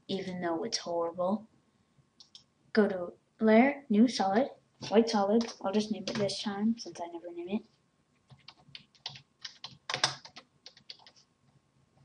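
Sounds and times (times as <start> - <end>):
typing on keyboard: 8.3 - 11.2.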